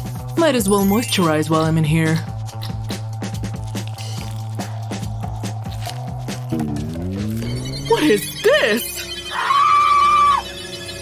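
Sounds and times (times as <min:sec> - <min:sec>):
soft background music: 0:00.0 - 0:11.0
woman screaming: 0:09.3 - 0:10.5.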